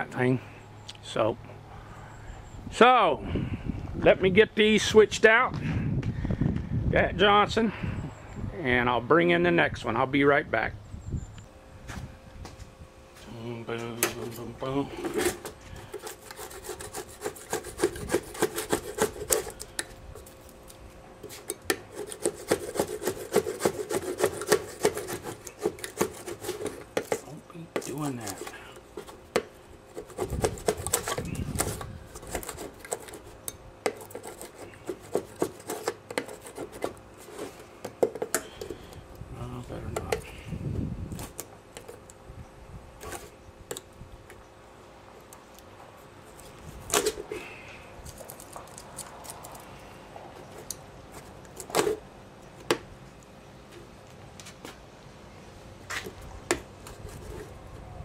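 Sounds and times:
scraper rasping on engine cover: 14.2 - 39.0, 56.8 - 57.8.

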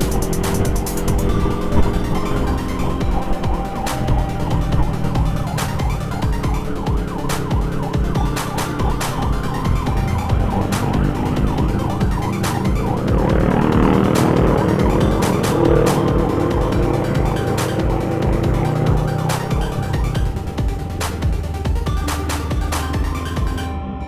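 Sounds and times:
ambulance siren: 0.0 - 23.6
traffic and engine noise: 0.0 - 23.7
background music: 0.0 - 24.0.

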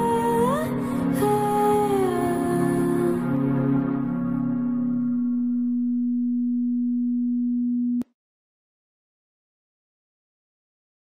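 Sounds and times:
steady sine tone: 0.0 - 8.0.

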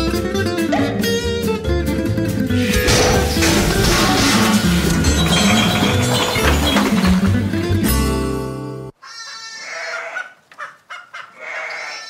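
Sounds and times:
short pitched cries: 9.0 - 10.2.

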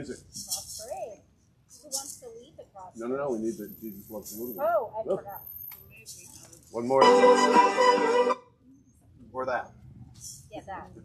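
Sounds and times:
shakers rattling: 0.2 - 2.4, 3.3 - 6.8.

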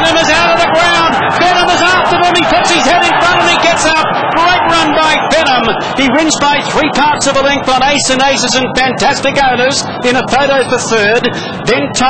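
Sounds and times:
man calling horse race: 0.0 - 12.0.

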